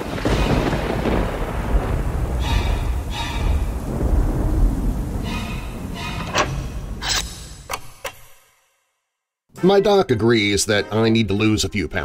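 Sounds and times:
rain hiss: 0.0 - 6.0
thunder rumbling: 0.0 - 7.7.

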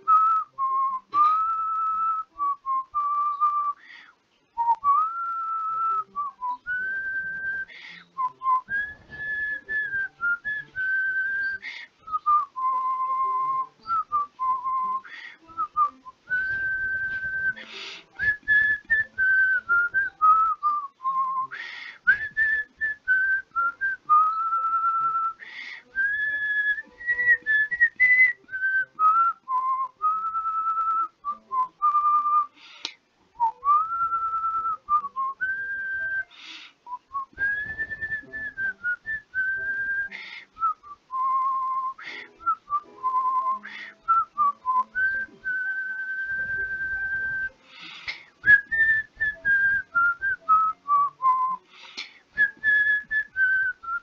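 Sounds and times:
person whistling a slow tune: 0.0 - 54.0
person breathing: 3.8 - 4.2, 7.7 - 8.2, 11.6 - 12.0, 15.0 - 15.6, 17.6 - 18.2, 21.5 - 22.1, 25.4 - 26.0, 32.5 - 33.0, 36.3 - 36.9, 40.1 - 40.6, 42.0 - 42.4, 43.6 - 44.1, 47.6 - 48.4, 51.6 - 52.4.

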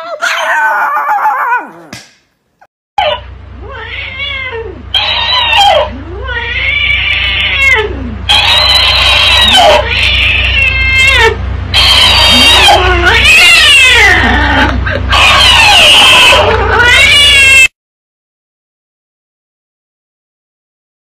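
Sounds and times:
dog howling: 0.0 - 1.9, 12.0 - 17.7
low steady hum: 2.5 - 15.2
cat meowing and yowling: 9.2 - 11.4, 12.2 - 17.7.

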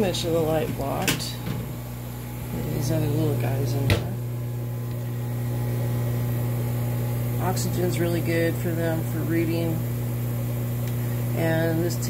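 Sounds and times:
aquarium pump humming: 0.0 - 12.0.

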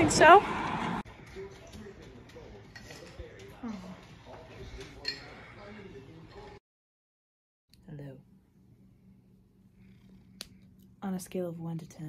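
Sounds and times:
cat purring: 9.7 - 10.9.

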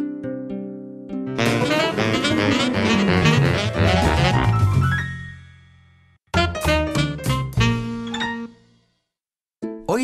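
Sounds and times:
jazzy band playing: 1.3 - 5.1, 6.4 - 8.6
plucked string notes: 1.4 - 4.8.

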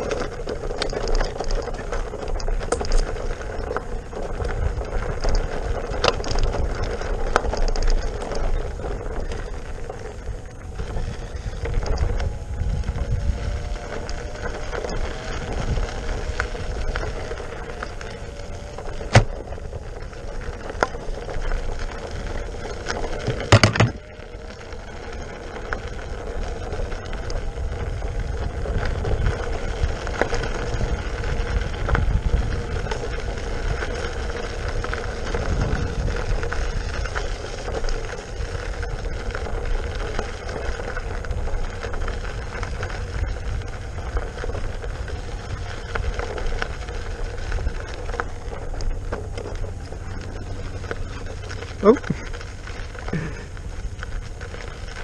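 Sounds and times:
electric motor whine: 0.0 - 55.0
tyre and wind rumble: 0.0 - 55.0.

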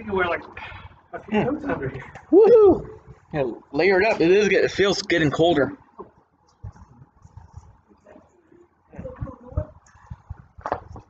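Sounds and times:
microphone handling noise: 9.0 - 11.0.

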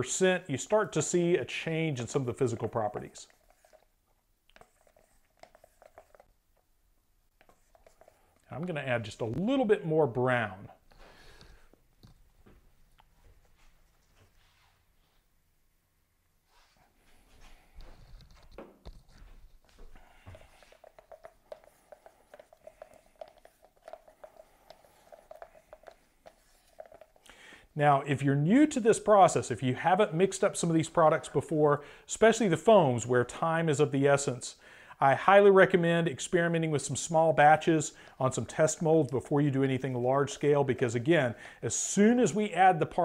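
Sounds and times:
stir stick scraping plastic cup: 0.7 - 6.7, 7.3 - 9.8, 17.6 - 27.8.

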